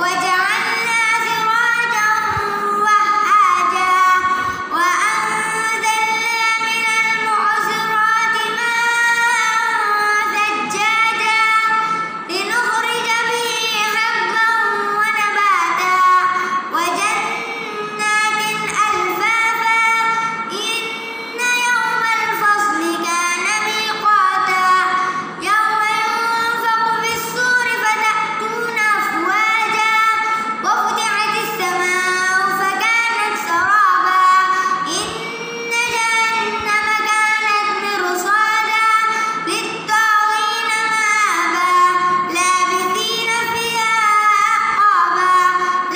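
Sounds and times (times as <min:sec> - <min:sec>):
boy reciting melodically: 0:00.0 - 0:45.9.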